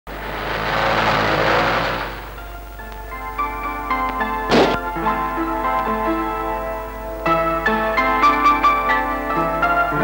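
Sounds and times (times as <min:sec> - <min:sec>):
car driving past: 0:00.1 - 0:02.6.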